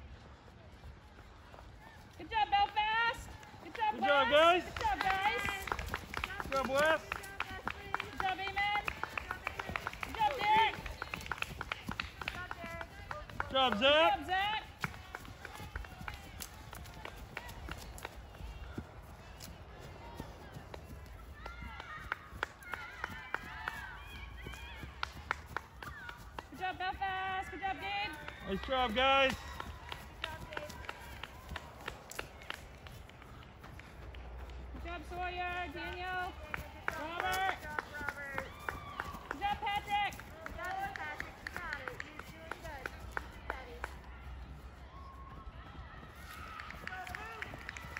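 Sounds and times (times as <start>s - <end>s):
running footsteps on dirt: 0.0s - 47.9s.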